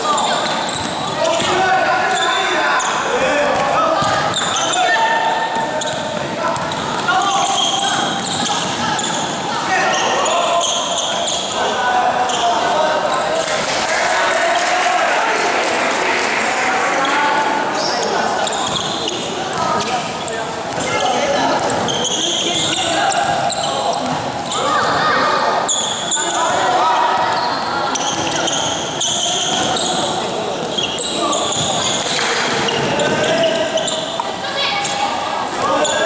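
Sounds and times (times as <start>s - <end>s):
sneaker squeaks on court: 0.0s - 3.0s, 4.0s - 11.6s, 17.7s - 24.9s, 25.6s - 35.0s.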